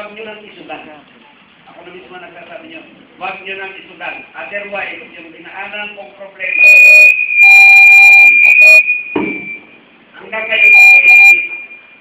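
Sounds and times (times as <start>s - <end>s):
high-pitched microphone feedback squeal: 6.4s - 12.0s.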